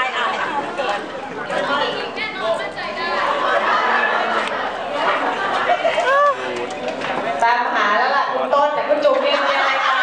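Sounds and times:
overlapping chatter of people: 0.0s - 10.0s.

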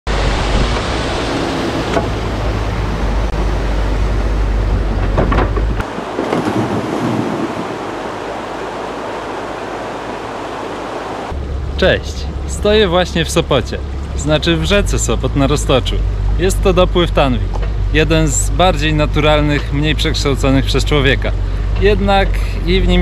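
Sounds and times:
excavator rumble: 0.1s - 7.4s, 11.3s - 23.0s
water rushing: 0.1s - 23.0s
rocks tumbling into water: 5.7s - 8.1s.

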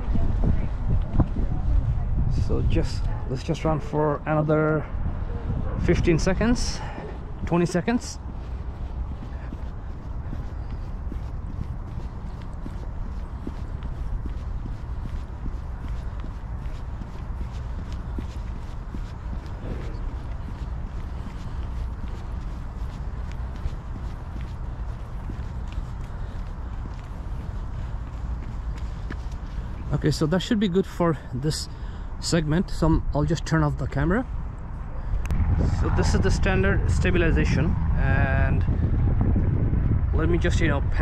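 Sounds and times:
wind on microphone: 0.0s - 29.9s, 34.3s - 41.0s
running footsteps on pavement: 0.0s - 32.9s.

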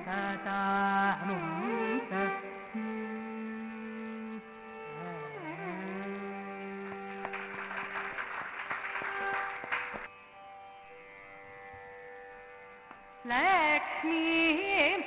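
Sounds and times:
classical indian melody: 0.0s - 15.0s.

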